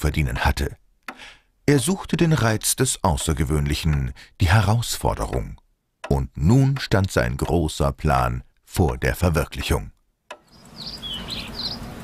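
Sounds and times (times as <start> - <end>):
low steady background noise: 0.0 - 12.0
birds chirping: 10.4 - 12.0.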